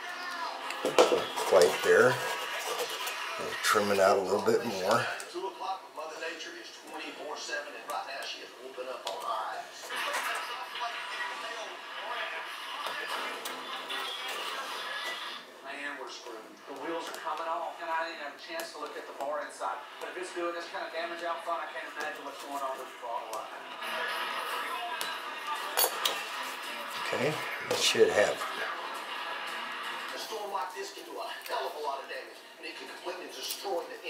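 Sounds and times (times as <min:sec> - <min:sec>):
television music and talk: 0:00.0 - 0:34.0.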